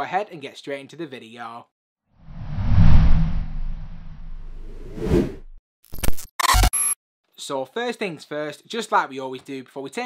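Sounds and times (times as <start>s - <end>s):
whoosh over deep rumble: 2.3s - 5.5s.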